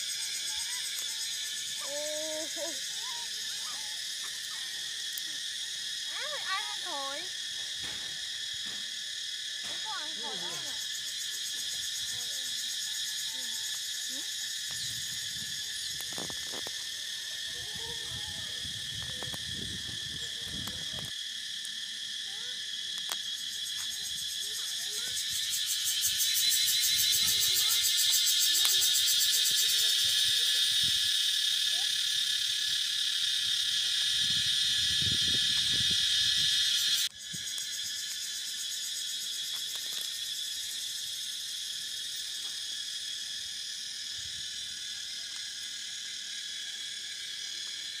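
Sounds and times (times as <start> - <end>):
insects buzzing: 0.0 - 48.0.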